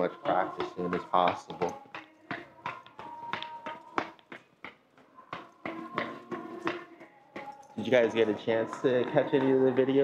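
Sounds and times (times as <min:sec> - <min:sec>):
faint music: 0:00.0 - 0:10.0
light irregular taps: 0:00.0 - 0:10.0.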